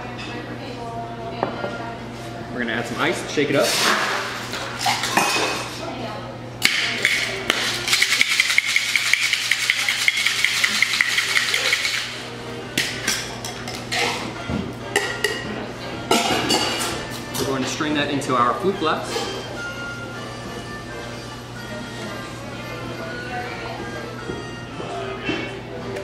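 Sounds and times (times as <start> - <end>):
shaker tins knocking: 6.6 - 12.2
clinks of ice and metal: 6.8 - 12.1
ice rattling in cocktail shaker: 7.0 - 12.2.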